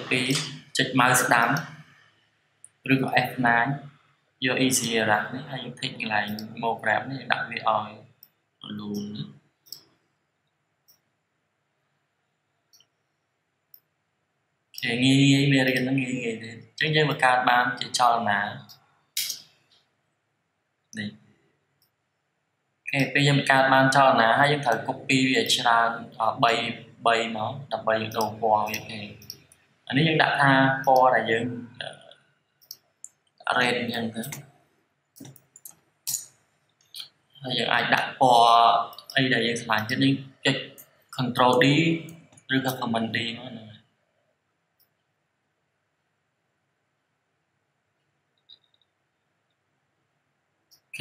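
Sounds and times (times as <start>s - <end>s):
sharp computer mouse clicks: 18.7s - 19.5s
computer mouse and keyboard clicks: 28.1s - 29.6s, 35.1s - 37.1s.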